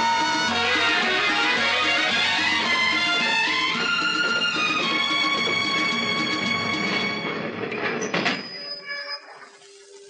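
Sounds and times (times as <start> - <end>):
held string notes: 0.0 - 7.6
train rumbling: 0.0 - 8.8.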